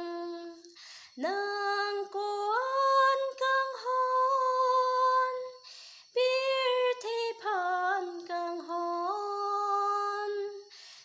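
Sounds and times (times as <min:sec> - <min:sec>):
woman singing unaccompanied: 0:00.0 - 0:11.0
audible breath: 0:00.7 - 0:01.2, 0:05.6 - 0:06.2, 0:10.6 - 0:11.0.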